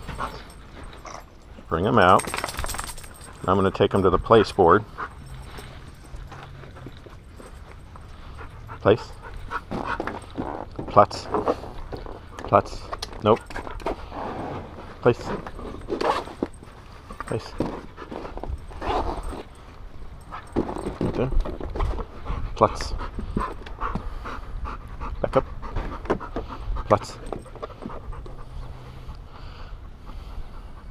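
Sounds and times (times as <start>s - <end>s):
dog panting: 0.0s - 1.5s, 3.0s - 10.5s, 21.9s - 30.9s.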